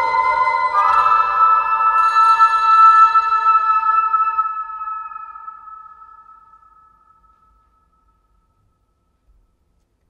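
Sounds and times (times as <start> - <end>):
bell-like metallic ringing: 0.0 - 7.3.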